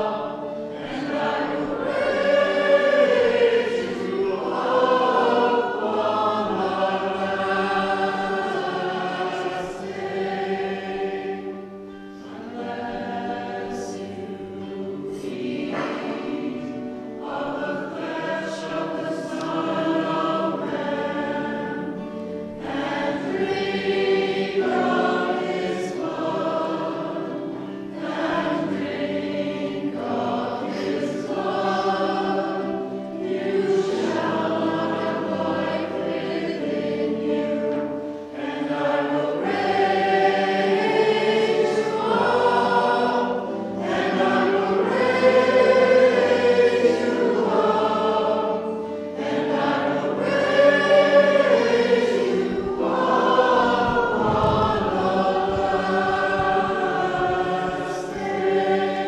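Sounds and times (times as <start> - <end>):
choir singing a hymn: 0.0 - 59.0.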